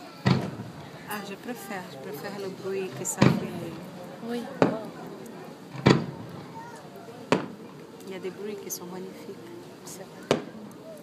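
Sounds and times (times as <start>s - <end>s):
firework shells bursting: 4.6s - 6.5s.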